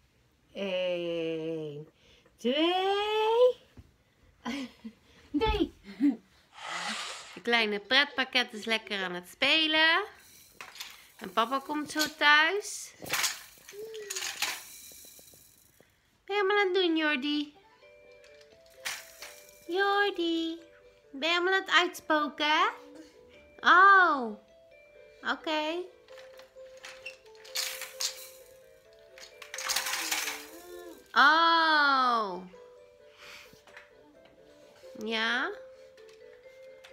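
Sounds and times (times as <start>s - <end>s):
quiet background tune: 0.0s - 36.9s
plastic and wooden toys clattering: 10.2s - 15.8s, 18.0s - 19.7s, 26.0s - 31.1s.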